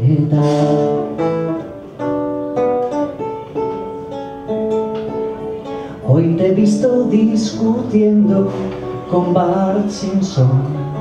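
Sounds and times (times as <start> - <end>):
person singing: 0.0 - 1.3, 6.0 - 11.0
classical guitar chords: 0.0 - 11.0.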